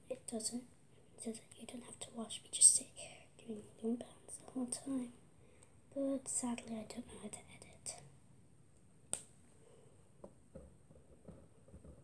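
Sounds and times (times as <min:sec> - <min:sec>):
rubber band snapping: 0:09.1 - 0:09.4.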